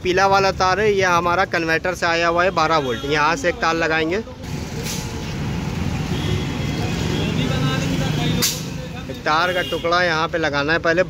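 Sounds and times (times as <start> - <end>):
vehicle engine rumbling: 0.0 - 11.0.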